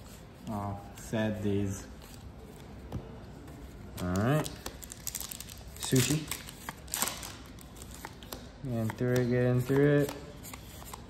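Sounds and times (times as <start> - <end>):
cards rustling: 0.2 - 11.0
trading cards flicking: 4.0 - 11.0.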